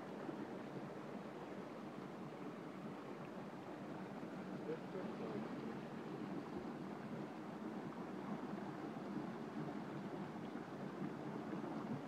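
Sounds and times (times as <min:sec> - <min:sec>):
faint murmur of voices: 0:04.6 - 0:06.0.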